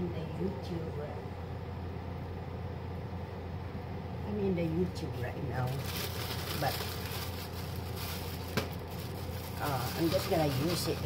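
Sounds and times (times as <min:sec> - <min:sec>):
onions sizzling in a pot: 0:05.7 - 0:11.0.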